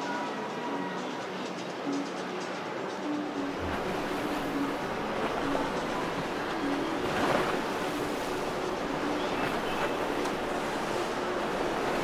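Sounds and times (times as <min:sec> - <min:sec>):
faint music: 0:00.0 - 0:12.0
water noise: 0:01.8 - 0:12.0.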